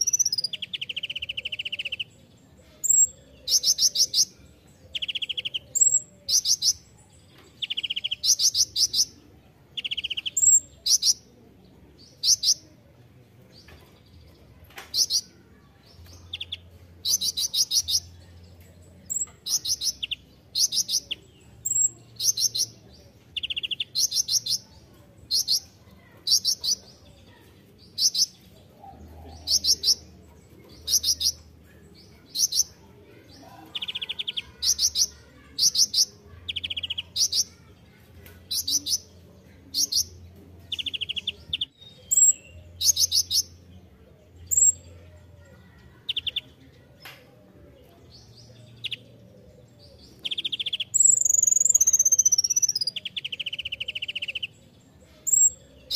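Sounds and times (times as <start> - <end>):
sunbird singing trilled phrases: 19.0 - 22.8, 50.2 - 54.6.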